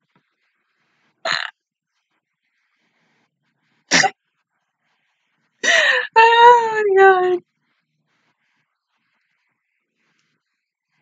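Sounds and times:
woman laughing: 0:05.6 - 0:07.4.

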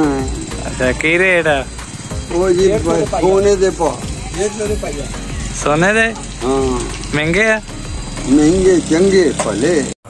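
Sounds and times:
man speaking: 0:02.3 - 0:09.9.

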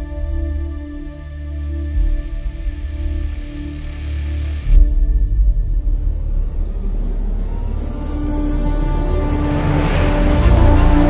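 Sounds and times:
deep rumble in soundtrack music: 0:00.0 - 0:11.0.

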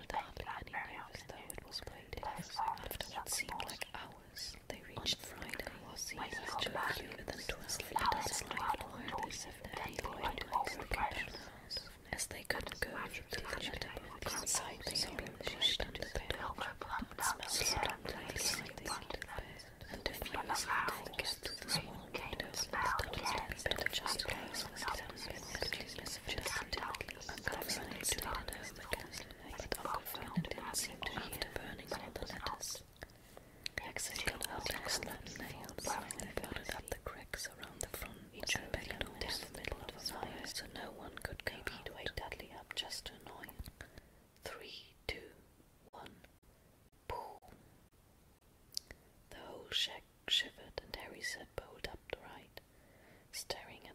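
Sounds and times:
person whispering: 0:00.0 - 0:46.3, 0:47.1 - 0:47.5, 0:48.8 - 0:52.6, 0:53.3 - 0:53.9.

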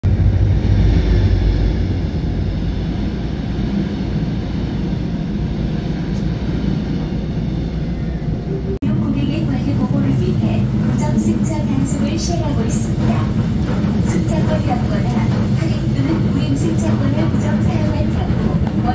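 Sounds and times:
train wheels rumbling on rails: 0:00.0 - 0:18.9.

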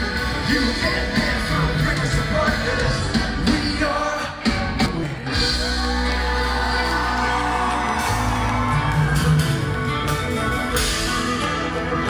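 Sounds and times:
bass: 0:00.0 - 0:12.0
drums: 0:00.0 - 0:12.0
electric guitars: 0:00.0 - 0:12.0.

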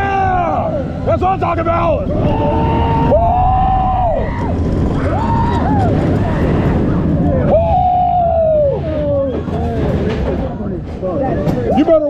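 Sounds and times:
roller coaster rumbling on track: 0:00.0 - 0:12.0
riders whooping: 0:02.1 - 0:10.1.

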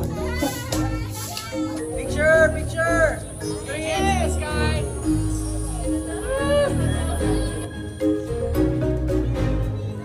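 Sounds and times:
background music: 0:00.0 - 0:10.0
children chattering excitedly: 0:00.0 - 0:10.0.

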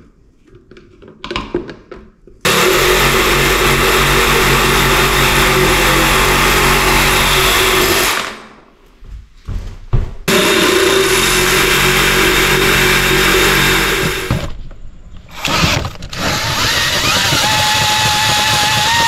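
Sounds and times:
motor running: 0:02.5 - 0:08.4, 0:10.3 - 0:14.4, 0:15.4 - 0:19.0.

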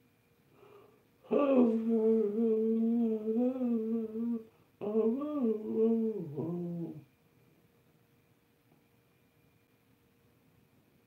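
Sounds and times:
man humming: 0:01.2 - 0:07.1.

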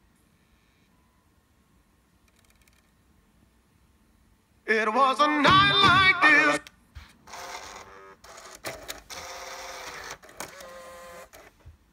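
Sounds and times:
disc player motor whirring: 0:07.3 - 0:11.6.

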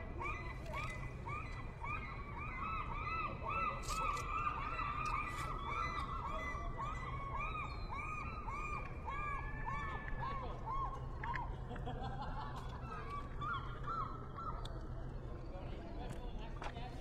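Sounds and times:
gulls calling: 0:12.8 - 0:15.2.

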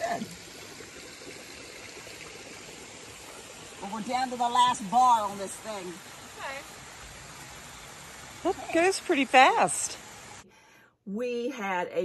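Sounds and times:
running water: 0:00.0 - 0:10.4.

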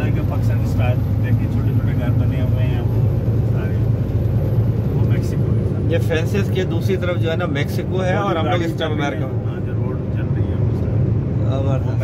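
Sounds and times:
road and engine drone: 0:00.0 - 0:12.0.

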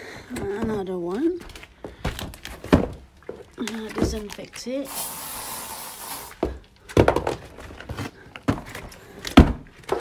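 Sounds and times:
box dull thumps: 0:06.4 - 0:07.6.

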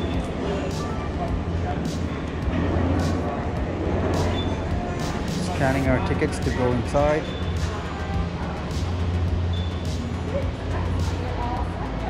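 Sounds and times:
background music with low bass: 0:00.0 - 0:12.0
faint voices: 0:00.0 - 0:12.0.

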